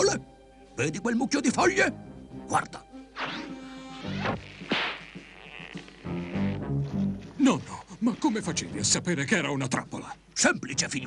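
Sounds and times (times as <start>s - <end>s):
background music: 0.0s - 11.0s
whip-like swish: 4.2s - 5.0s.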